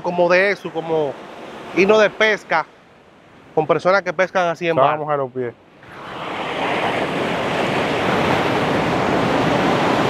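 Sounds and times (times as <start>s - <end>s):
ocean surf on sandy beach: 0.0s - 10.0s.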